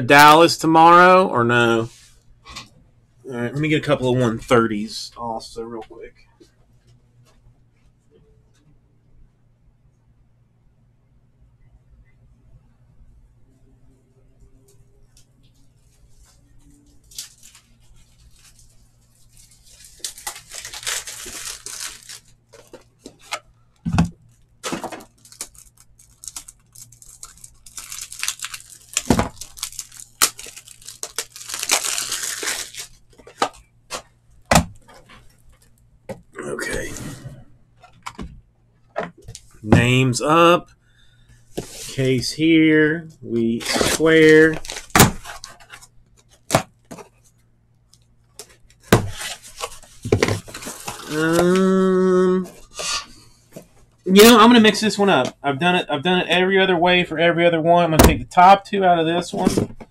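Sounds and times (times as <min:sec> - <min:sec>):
plastic packaging crinkling and tearing: 0:16.6 - 0:23.4, 0:24.3 - 0:34.1, 0:43.6 - 0:47.2, 0:48.4 - 0:51.6
man humming: 0:51.0 - 0:52.6.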